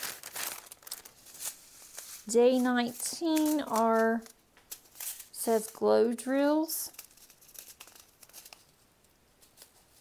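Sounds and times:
foil bag crinkling: 0.0s - 5.8s, 6.9s - 8.8s.

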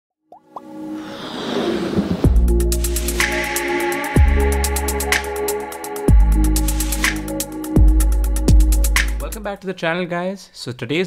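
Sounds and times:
intro music: 0.5s - 9.5s
swell of noise: 0.8s - 3.9s.

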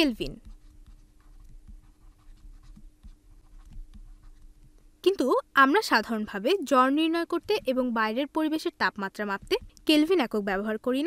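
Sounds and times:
stylus scratching on tablet: 0.0s - 10.7s
faint steady hum: 0.0s - 11.0s.

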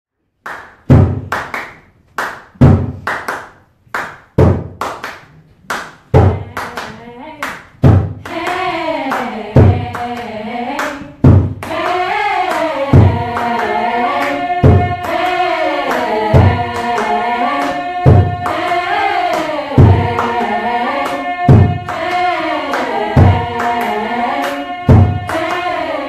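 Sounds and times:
rhythmic hand clapping: 0.4s - 26.0s
women's a cappella choir singing: 8.2s - 26.0s.

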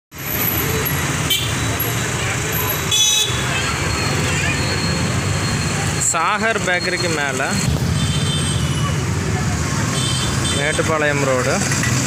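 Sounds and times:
street traffic engine rumble: 0.1s - 12.0s.

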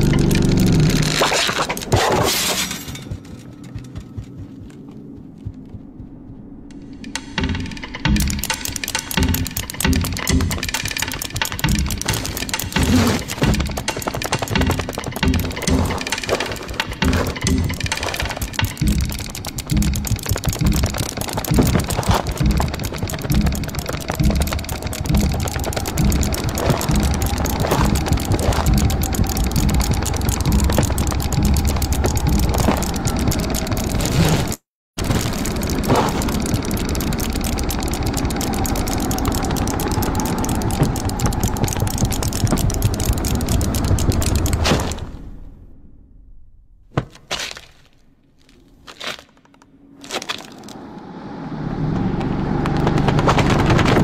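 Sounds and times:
film sound effects: 0.0s - 54.0s
music with low beat: 3.0s - 34.1s, 35.0s - 44.6s.

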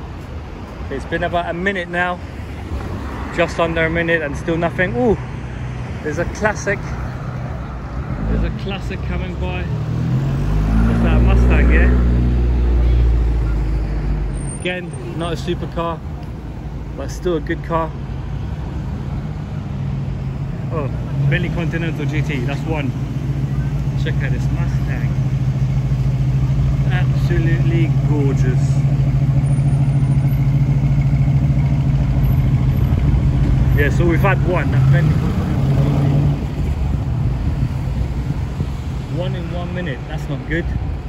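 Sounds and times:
car engines in slow traffic: 0.0s - 41.0s.

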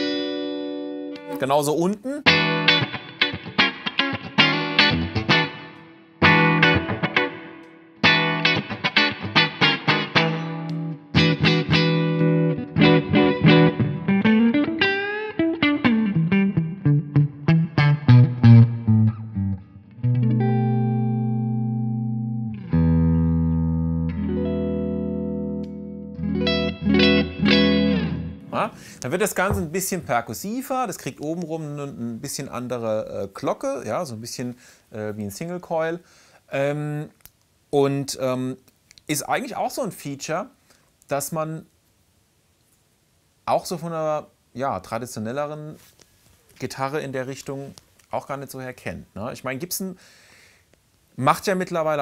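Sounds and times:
clean electric guitar playing: 0.0s - 1.4s, 2.2s - 29.8s.

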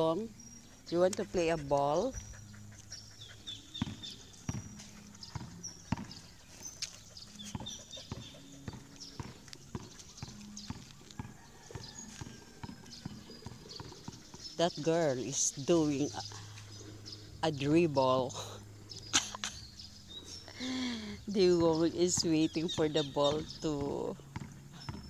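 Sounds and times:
birds chirping: 0.0s - 25.0s
basketball bouncing on concrete: 3.7s - 6.3s, 7.4s - 14.8s, 21.4s - 25.0s.

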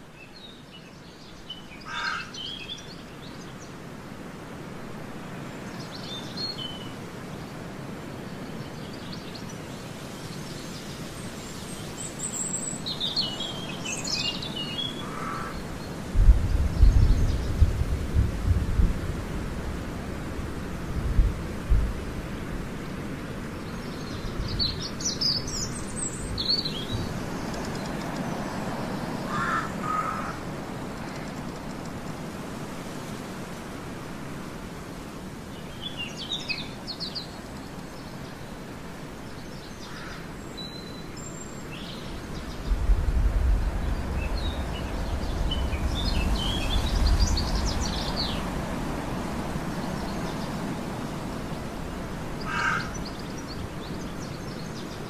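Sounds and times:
steady background hiss: 0.0s - 55.0s
birds chirping: 8.3s - 17.7s, 23.6s - 32.0s, 35.6s - 55.0s.

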